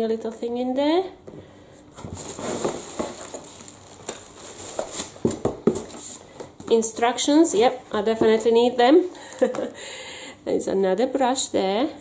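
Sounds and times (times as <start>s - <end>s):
packaging rustling and scraping: 1.9s - 6.8s.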